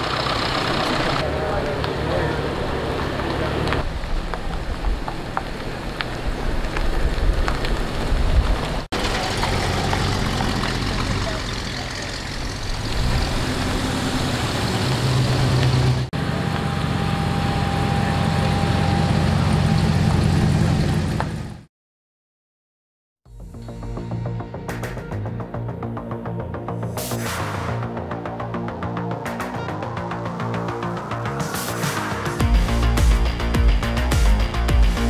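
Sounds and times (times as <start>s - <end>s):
tyres rolling on gravel: 0.0s - 16.8s
car engines running slowly: 0.0s - 21.6s
people talking: 0.9s - 3.8s, 9.0s - 12.5s.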